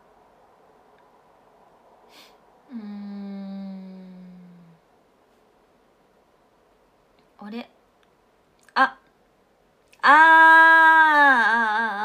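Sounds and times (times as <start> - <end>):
woman humming: 2.7 - 4.9, 10.0 - 12.0.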